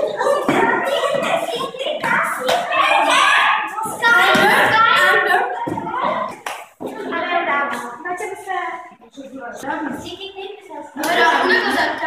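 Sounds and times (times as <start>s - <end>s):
children talking: 0.0s - 12.0s.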